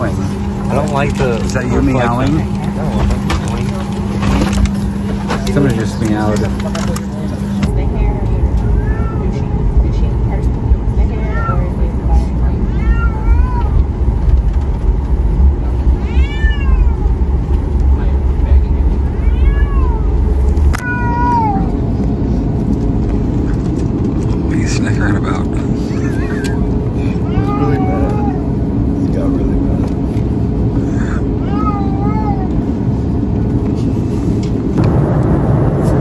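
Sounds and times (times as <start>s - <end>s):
airliner cabin rumble: 0.0s - 36.0s
cat meowing: 8.6s - 9.4s, 12.6s - 13.8s, 15.8s - 17.2s, 19.0s - 21.8s, 27.2s - 28.5s, 31.4s - 32.6s.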